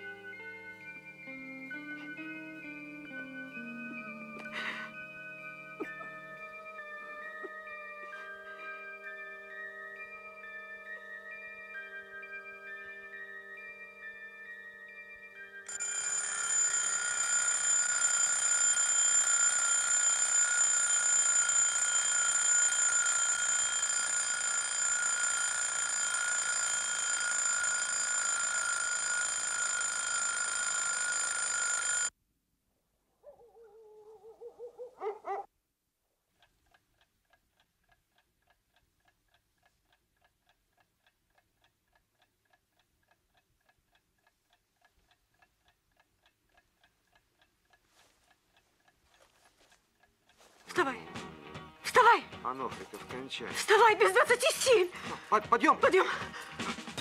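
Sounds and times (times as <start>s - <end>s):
bell ringing loudly: 8.4s - 32.1s
clock ticking: 36.4s - 57.0s.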